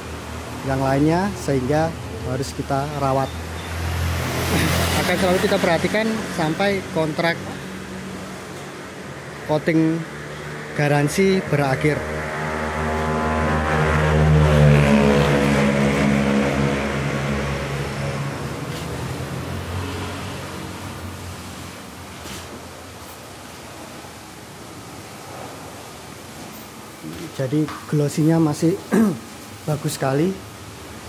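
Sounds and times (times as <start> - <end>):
vehicle engine passing by: 0.0 - 22.5.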